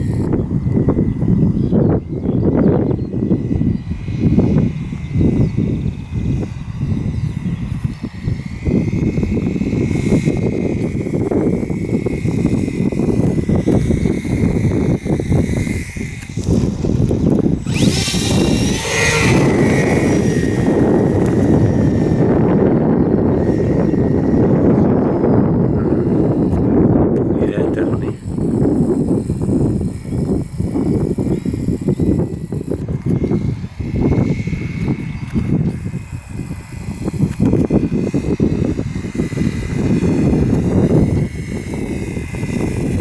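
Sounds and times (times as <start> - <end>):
gusting low rumble: 0.0 - 43.0
model airplane motor buzzing: 0.0 - 43.0.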